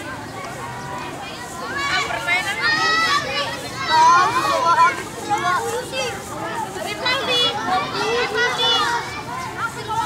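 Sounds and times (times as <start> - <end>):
children shouting while playing: 1.5 - 6.3, 7.0 - 10.0.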